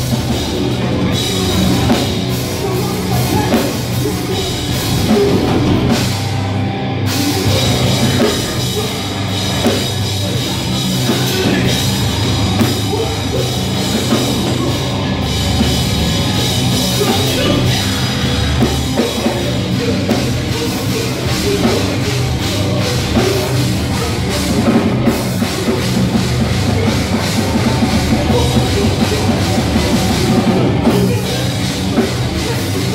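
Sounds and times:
bass guitar: 0.0s - 32.9s
distorted electric guitars: 0.0s - 32.9s
drum kit: 0.0s - 32.9s
hardcore band playing live: 0.0s - 32.9s.

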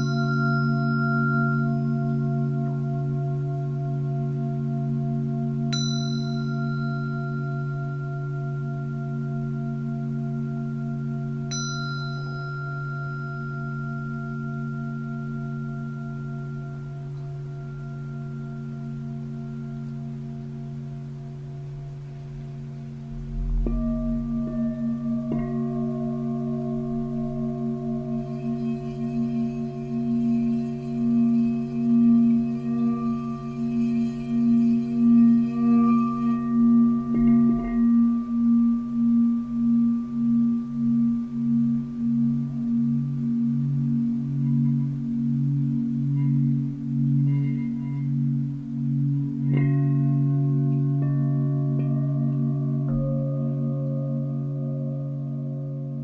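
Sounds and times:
higher shimmering tone: 0.0s - 56.0s
singing bowls ringing: 0.0s - 56.0s.

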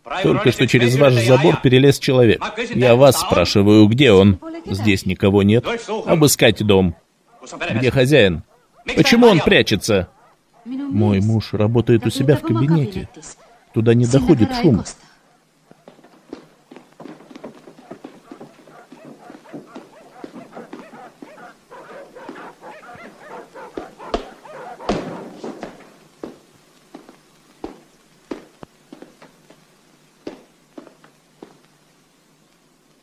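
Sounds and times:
footsteps on wooden stairs: 15.7s - 29.6s, 30.2s - 31.6s.

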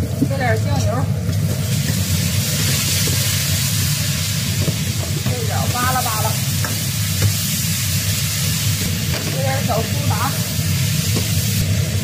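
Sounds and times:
beans sizzling in a wok: 0.0s - 12.0s
spatula tapping a wok: 1.3s - 3.3s, 6.6s - 7.5s.

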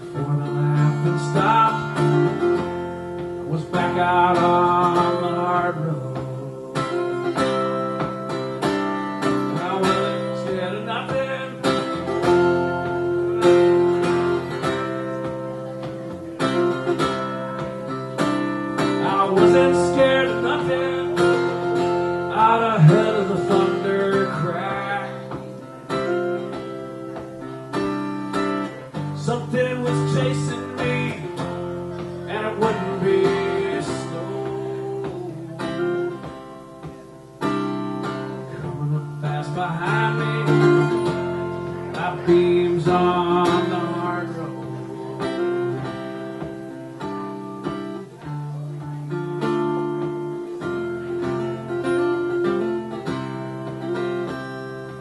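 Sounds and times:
solo acoustic guitar: 0.0s - 55.0s.

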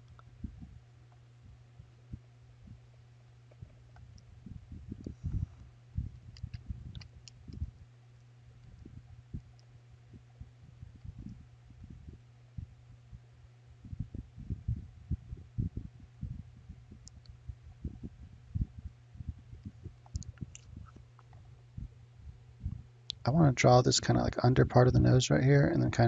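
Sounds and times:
low electrical hum: 0.0s - 26.0s.

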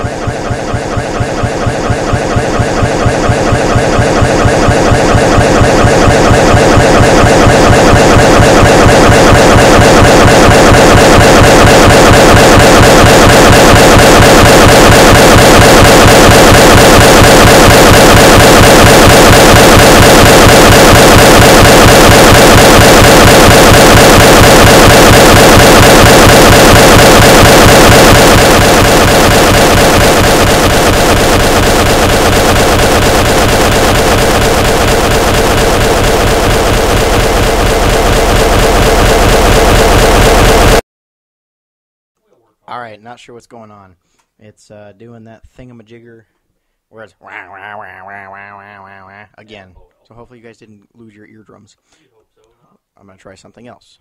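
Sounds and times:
harsh looping glitch buzz: 0.0s - 40.8s, 47.4s - 49.2s.

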